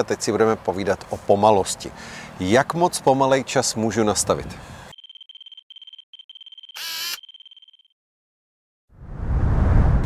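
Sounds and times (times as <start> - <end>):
high stuttering electronic beep: 4.9 - 7.9.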